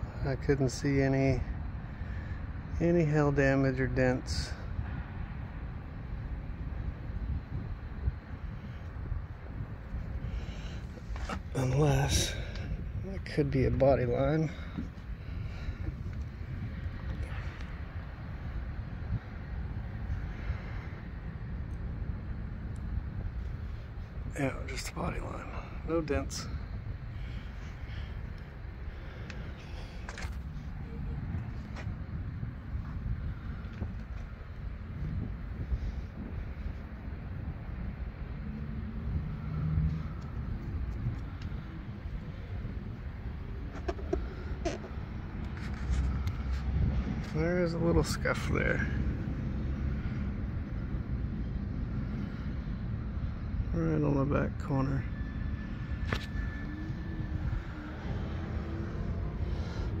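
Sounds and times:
wind buffeting microphone: 0.0 - 53.6, 55.7 - 60.0
faint engine hum: 0.0 - 60.0
rumble of vehicles: 0.0 - 60.0.

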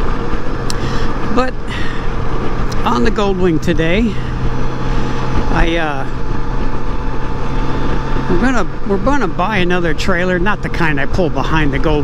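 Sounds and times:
engine humming at cruising speed: 0.0 - 12.0
wind and road noise: 0.0 - 12.0.

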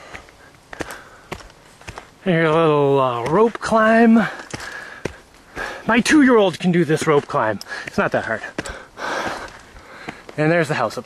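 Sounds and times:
footsteps on leafy dirt path: 0.0 - 11.0.

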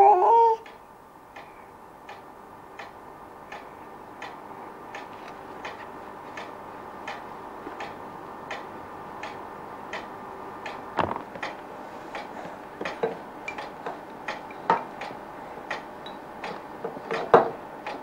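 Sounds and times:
clock ticking: 0.6 - 10.8, 12.2 - 16.6.

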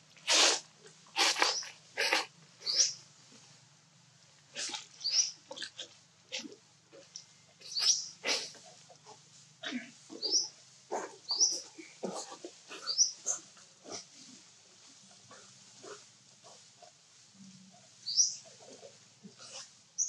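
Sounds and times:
monkeys squeaking: 1.2 - 3.0, 7.6 - 8.5, 10.1 - 10.5, 11.3 - 13.4.

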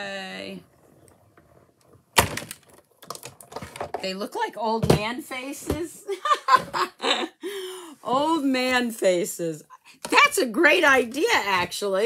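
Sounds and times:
plastic plates clattering: 2.2 - 4.0.

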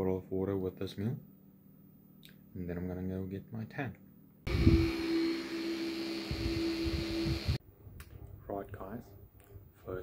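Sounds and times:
turbine blower hum: 4.5 - 7.6.

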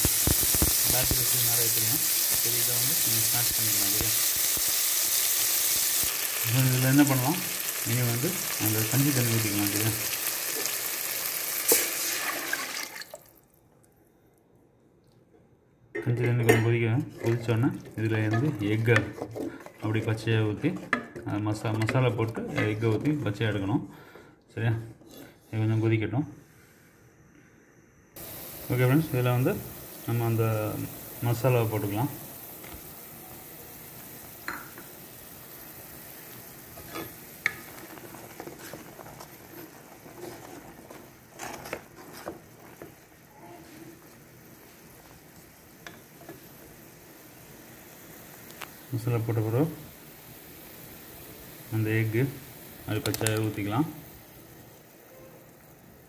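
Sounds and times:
water sizzling in a hot pot: 0.0 - 13.4, 28.2 - 56.0.

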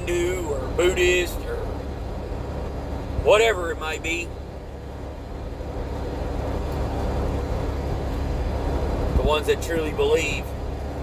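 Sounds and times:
truck engine and road rumble: 0.0 - 11.0.

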